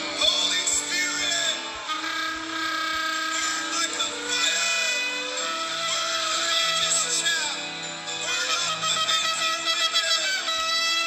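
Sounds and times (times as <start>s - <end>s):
instrumental backing music: 0.0s - 11.0s
man singing into microphone: 0.0s - 11.0s.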